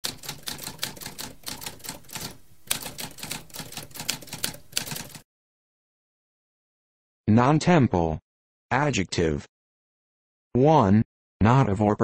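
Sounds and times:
typewriter keys clacking: 0.0s - 5.2s.

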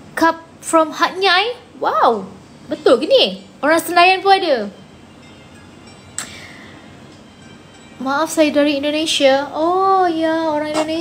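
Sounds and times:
low background hiss: 0.0s - 11.0s
faint tone: 2.4s - 9.8s.

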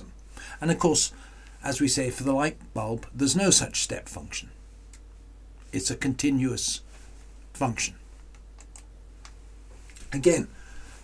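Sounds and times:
low steady hum: 0.0s - 11.0s
computer clicks: 8.3s - 8.9s.

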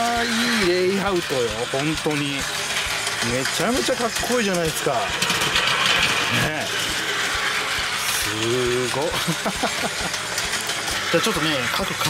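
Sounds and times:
toy train motor whirring: 0.0s - 12.0s.

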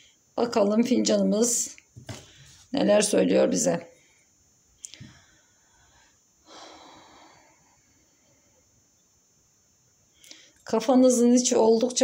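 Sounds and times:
soft breath: 3.9s - 8.8s.

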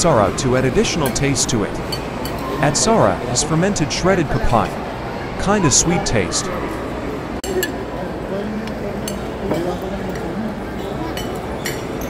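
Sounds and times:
murmur of voices: 0.0s - 12.0s
cutlery clinking on plate: 10.8s - 12.0s.

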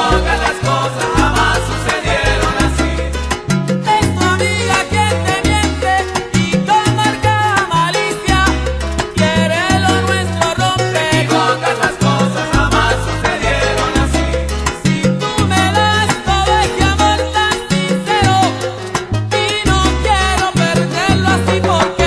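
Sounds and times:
instrumental salsa music: 0.0s - 22.0s.

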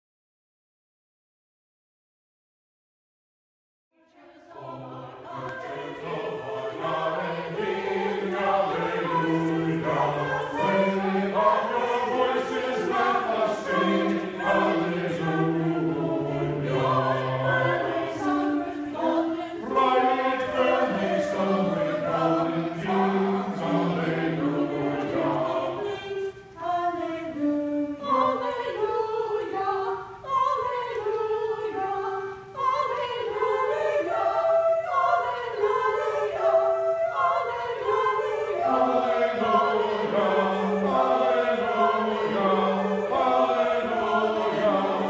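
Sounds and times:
church choir singing: 4.0s - 45.0s.

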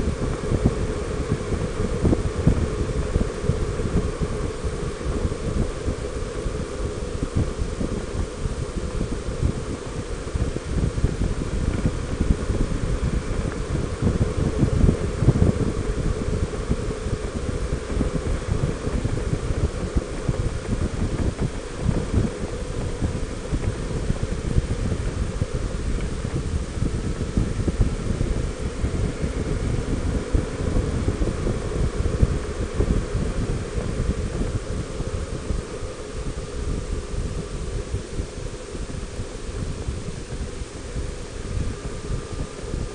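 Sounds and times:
wind buffeting microphone: 0.0s - 42.9s.

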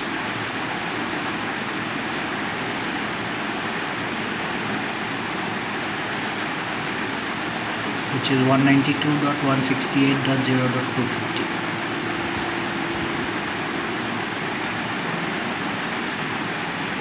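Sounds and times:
room noise hiss: 0.0s - 17.0s.

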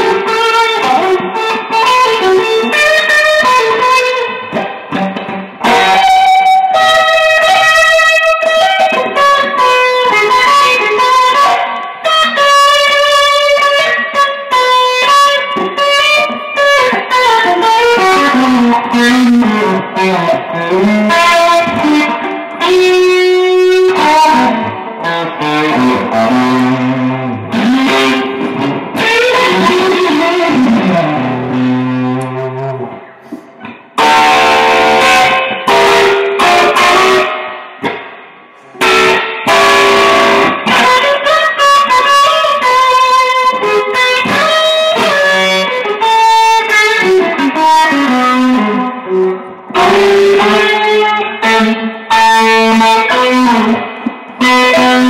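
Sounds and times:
electric guitar lead: 0.0s - 55.0s.

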